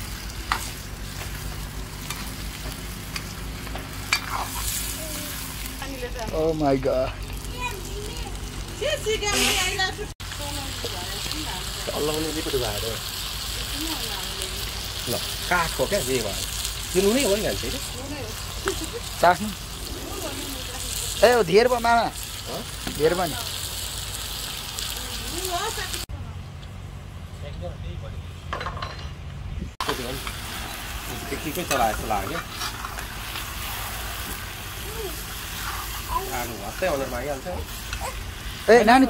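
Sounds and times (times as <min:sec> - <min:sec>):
chicken sizzling in an iron pan: 0:00.0 - 0:26.1, 0:29.8 - 0:39.0
person laughing: 0:18.6 - 0:19.2.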